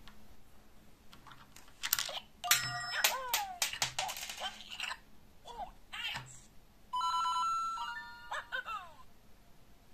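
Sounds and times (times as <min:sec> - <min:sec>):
toy voice-like sound: 0:07.0 - 0:09.1.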